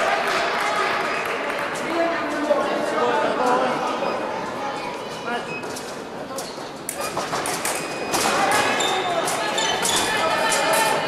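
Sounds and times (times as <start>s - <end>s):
fencing blades and feet clicking: 5.6s - 11.0s.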